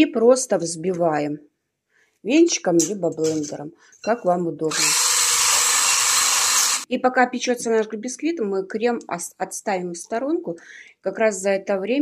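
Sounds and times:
electric hand blender running: 4.7s - 6.9s.

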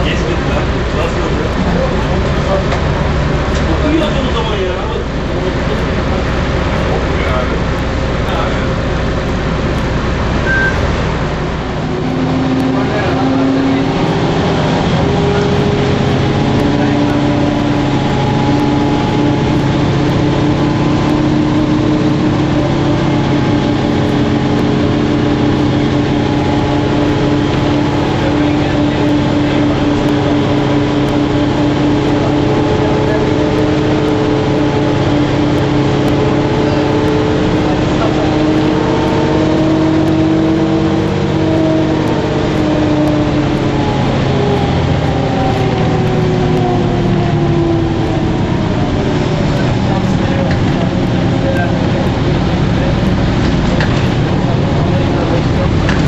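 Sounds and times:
bus drivetrain whining drone: 0.0s - 56.0s
bus engine rumble: 0.0s - 56.0s.

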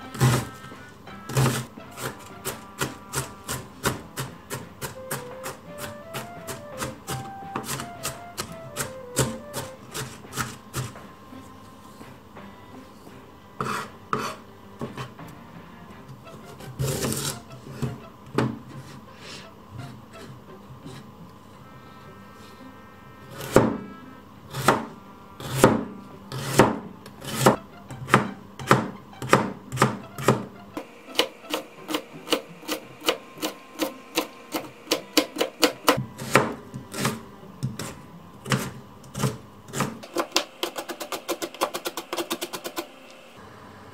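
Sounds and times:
knife cutting carrot: 1.3s - 11.0s, 13.6s - 15.1s, 16.4s - 18.0s, 31.1s - 42.9s.

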